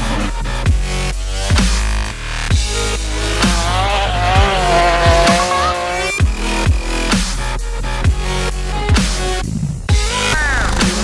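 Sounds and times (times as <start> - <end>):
rally car engine and tyres cornering: 2.7 - 6.5
electronic dance music: 3.2 - 6.3.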